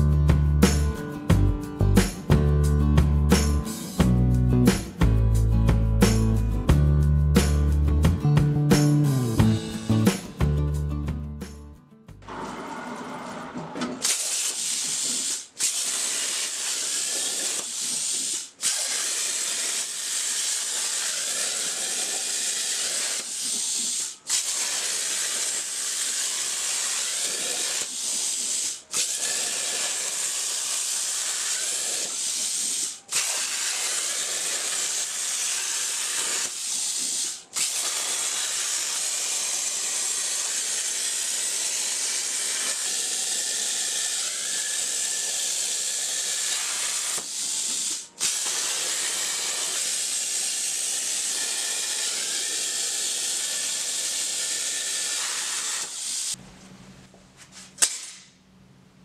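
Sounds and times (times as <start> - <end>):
plasma cutter arc hissing: 14.0 - 56.4.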